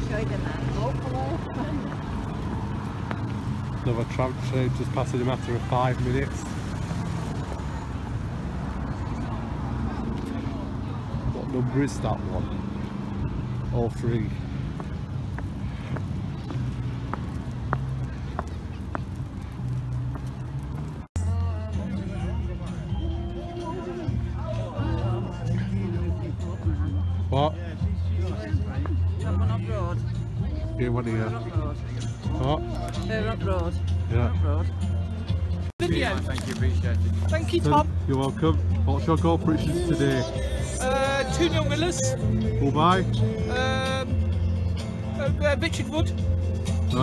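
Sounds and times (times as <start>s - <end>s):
footsteps on paved path: 0.0s - 6.3s, 13.8s - 21.1s, 32.5s - 40.8s
faint voices: 8.6s - 44.3s.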